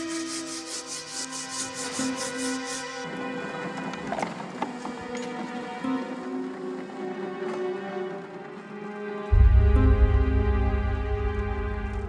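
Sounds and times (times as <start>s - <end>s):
tool rasping foam: 0.0s - 3.0s.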